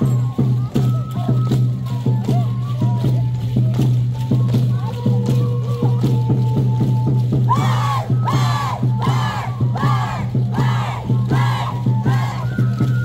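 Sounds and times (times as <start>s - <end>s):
group shouting in rhythm: 7.5s - 12.5s.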